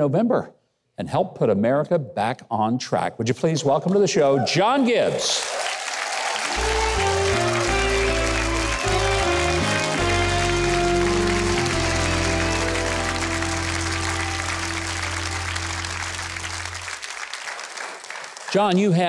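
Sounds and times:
studio audience applause: 0:04.4 - 0:19.0
house band playing a tune: 0:06.5 - 0:16.9.

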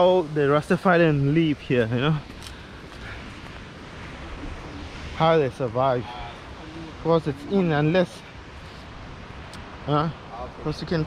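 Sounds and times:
small waterfall rushing: 0:00.0 - 0:11.0
wind rumbling on microphone: 0:00.0 - 0:11.0.

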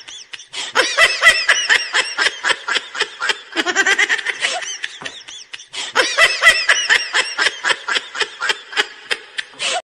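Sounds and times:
high-pitched laughter: 0:00.0 - 0:09.8.

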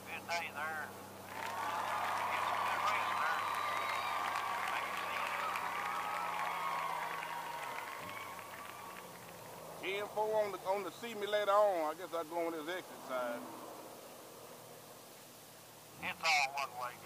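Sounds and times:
garbled radio transmission: 0:00.0 - 0:00.8
radio static hiss: 0:00.0 - 0:01.3, 0:09.7 - 0:17.0.

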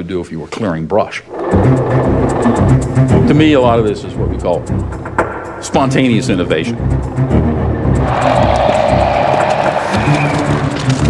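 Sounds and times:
background music: 0:01.2 - 0:11.0.

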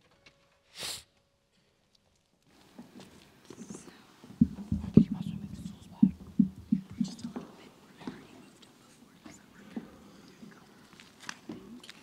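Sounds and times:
knocks and rustling on microphone: 0:02.8 - 0:08.3
person whispering: 0:03.6 - 0:12.0.

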